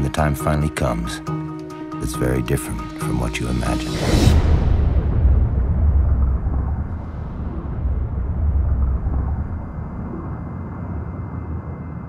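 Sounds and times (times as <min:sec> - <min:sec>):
low steady rumble: 0:03.6 - 0:12.0.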